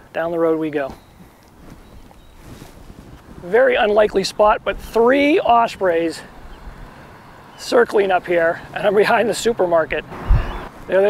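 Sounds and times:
low outdoor rumble and hiss: 3.3s - 11.0s.

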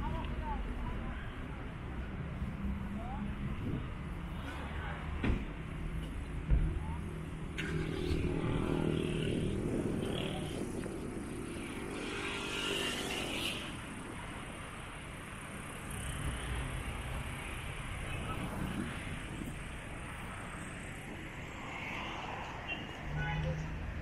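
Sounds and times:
street traffic rumble: 0.0s - 24.0s.

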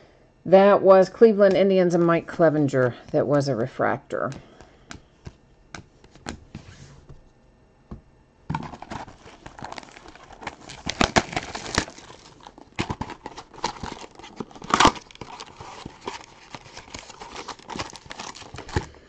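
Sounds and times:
foil wrappers crinkling: 8.5s - 19.0s
cardboard box tearing: 8.6s - 18.9s.

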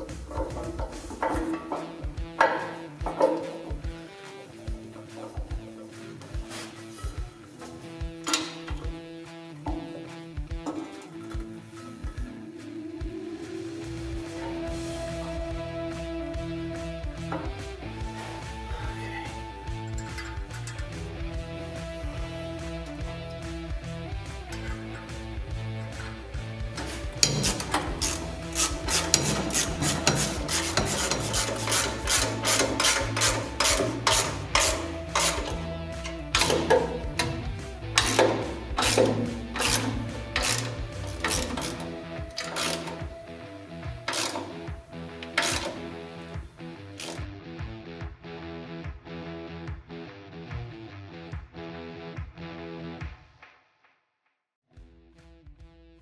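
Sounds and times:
background music: 0.0s - 53.5s
hand ratchet clicking: 8.1s - 12.3s, 19.7s - 21.3s, 24.4s - 47.3s.

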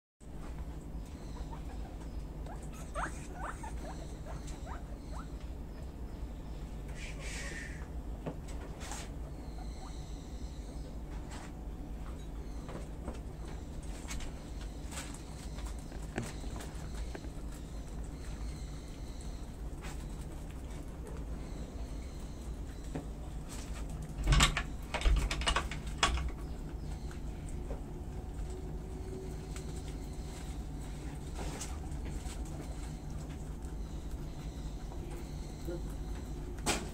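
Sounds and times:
steady low hum: 0.2s - 36.9s
guinea pigs squeaking: 0.5s - 8.0s, 8.8s - 11.4s, 12.1s - 36.9s
animals crunching leafy greens: 12.8s - 24.9s, 25.8s - 36.9s.

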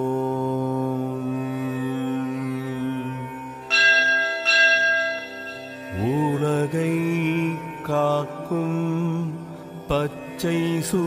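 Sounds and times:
droning tone: 0.1s - 11.0s
bell ringing: 3.7s - 8.0s.

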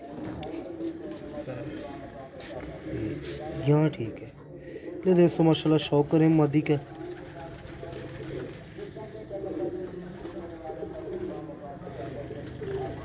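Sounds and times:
faint voices: 0.0s - 13.0s
pigeons cooing: 0.0s - 13.0s.

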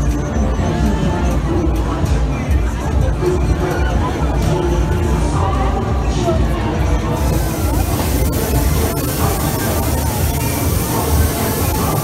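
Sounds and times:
fairground ride music: 0.0s - 12.0s
smoke jet hissing spray: 7.2s - 12.0s.

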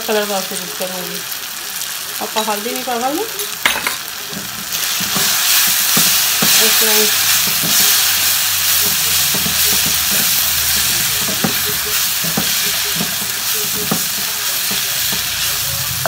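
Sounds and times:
masala sizzling in a wok: 0.0s - 16.0s
spatula stirring and scraping: 4.2s - 16.0s.

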